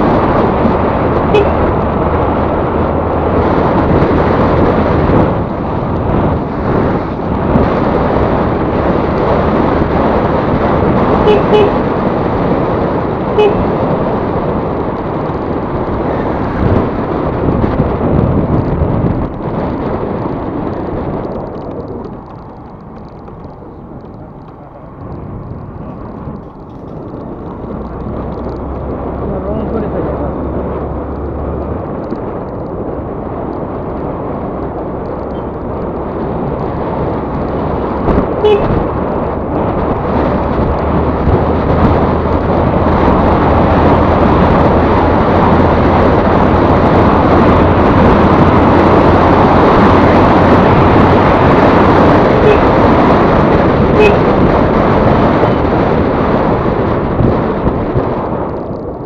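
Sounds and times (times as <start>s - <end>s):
road noise: 0.0s - 59.0s
scooter engine hum: 0.0s - 59.0s
wind rushing over microphone: 0.0s - 59.0s.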